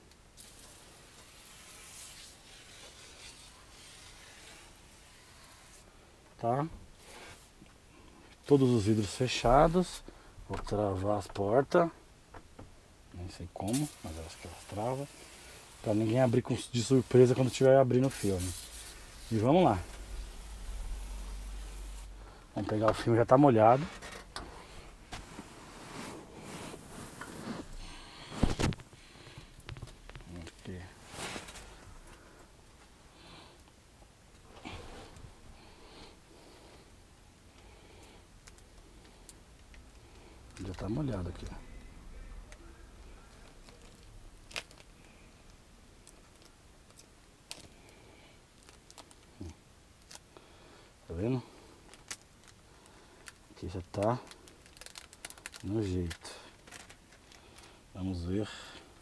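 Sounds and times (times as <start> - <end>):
soft handling rustles: 13.2 - 33.0, 38.4 - 50.3, 51.1 - 59.0.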